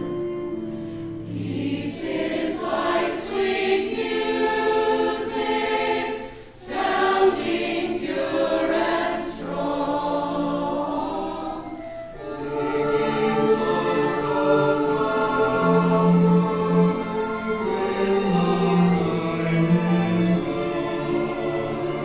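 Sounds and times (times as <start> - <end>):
mixed choir singing a hymn: 1.2 - 22.0.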